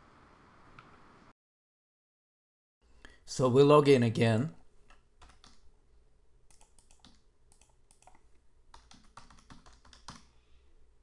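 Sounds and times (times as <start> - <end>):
computer keyboard clicks: 4.9 - 5.6, 6.5 - 10.3.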